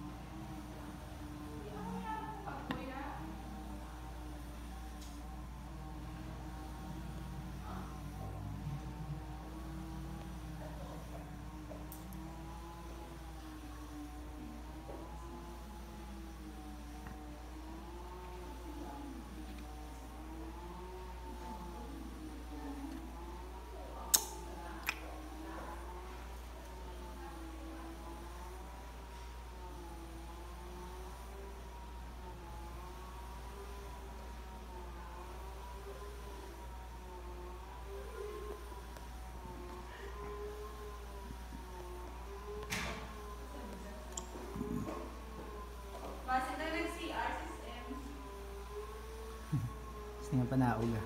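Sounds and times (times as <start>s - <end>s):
electric roller blind motor humming: 0.0s - 51.0s.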